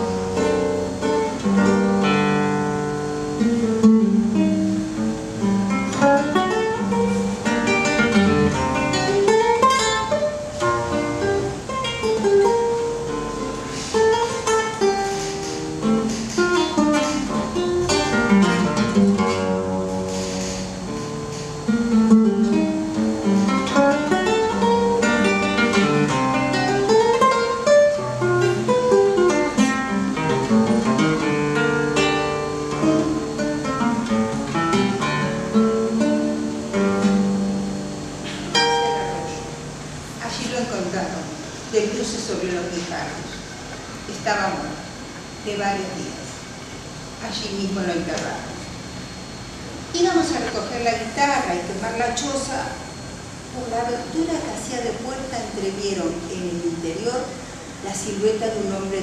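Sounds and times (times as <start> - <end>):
classical guitar fingerstyle: 0.0 - 47.2.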